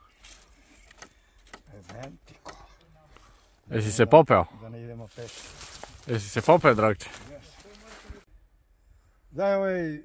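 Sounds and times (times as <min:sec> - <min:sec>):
man's low voice: 0:03.7 - 0:08.2.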